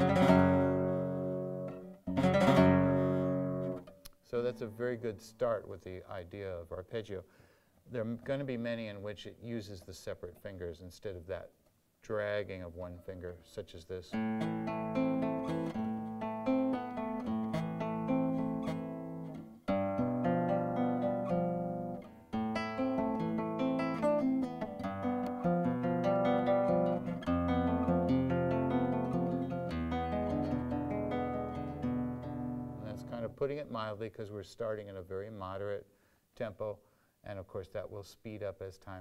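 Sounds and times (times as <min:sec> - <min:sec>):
fingerstyle flamenco guitar: 0:00.0 - 0:04.7, 0:14.1 - 0:33.5.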